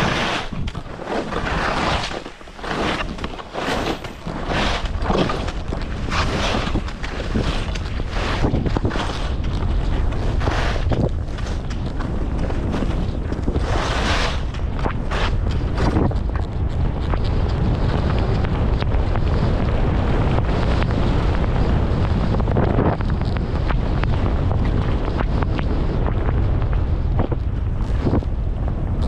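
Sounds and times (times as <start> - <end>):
skis swishing through snow: 0.0 - 26.4
wind buffeting microphone: 0.0 - 29.0.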